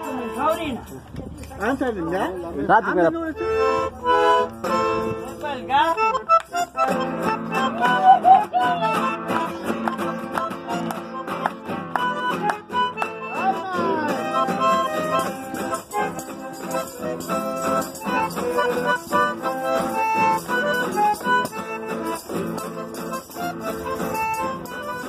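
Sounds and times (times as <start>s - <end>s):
folk dance music: 1.4s - 25.0s
people clapping along: 7.6s - 15.0s.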